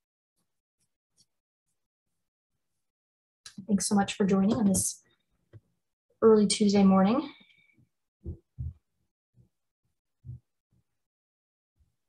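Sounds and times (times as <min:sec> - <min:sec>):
soft low thumps: 0:08.2 - 0:08.8.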